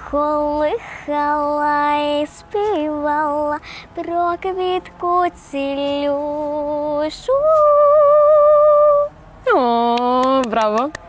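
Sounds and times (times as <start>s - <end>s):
girl singing long note: 0.0s - 9.9s.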